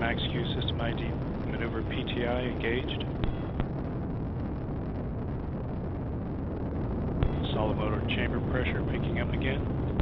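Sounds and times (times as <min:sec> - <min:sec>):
rocket engine rumble: 0:00.0 - 0:10.0.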